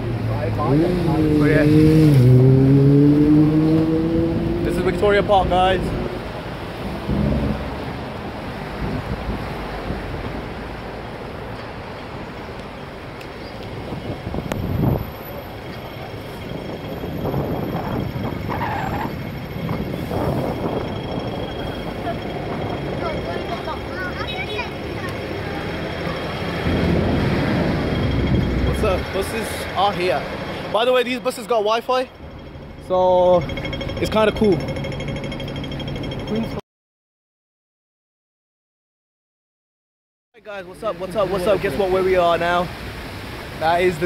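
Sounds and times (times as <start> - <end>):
cars and buses passing: 0.0 - 36.6, 40.4 - 44.0.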